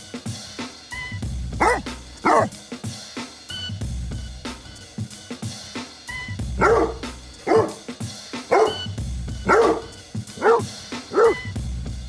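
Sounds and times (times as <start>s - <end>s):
background music with drum beat: 0.0s - 12.0s
dog barking: 1.6s - 2.6s, 6.6s - 7.9s, 8.5s - 11.5s.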